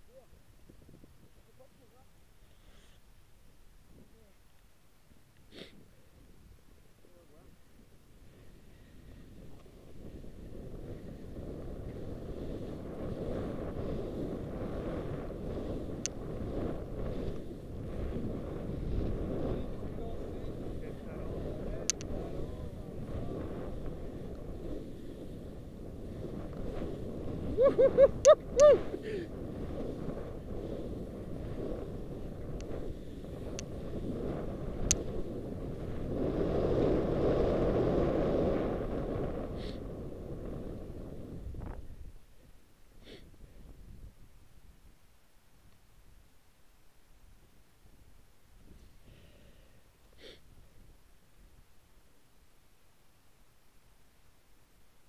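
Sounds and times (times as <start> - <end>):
wind rushing over microphone: 0.0 - 1.7, 5.5 - 45.0
skis sliding through snow: 8.2 - 28.0, 28.7 - 42.0
skier shouting woo-hoo: 27.4 - 29.2
person laughing: 27.5 - 29.3.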